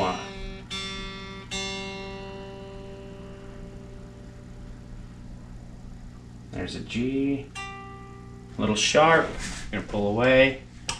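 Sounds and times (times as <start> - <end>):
electric guitar string plucked: 0.0 - 8.6.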